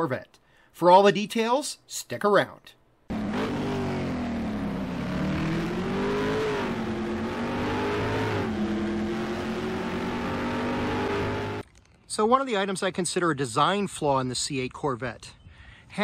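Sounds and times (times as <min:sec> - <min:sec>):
car engine accelerating: 0:03.1 - 0:11.6.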